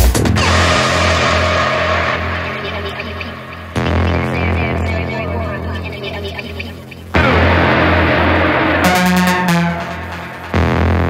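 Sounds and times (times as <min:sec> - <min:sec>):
pulsing deep bass: 0:00.0 - 0:11.0
synth drone: 0:00.0 - 0:11.0.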